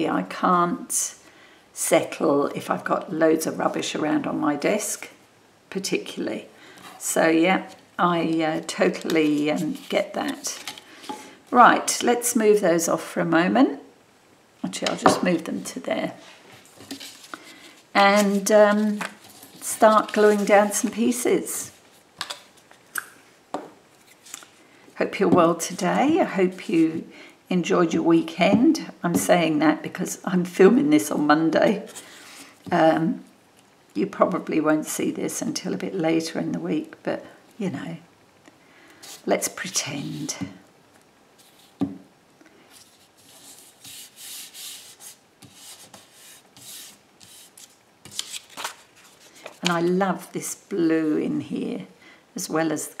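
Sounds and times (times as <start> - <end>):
paper crackling: 16.6 - 21.1, 42.8 - 49.8.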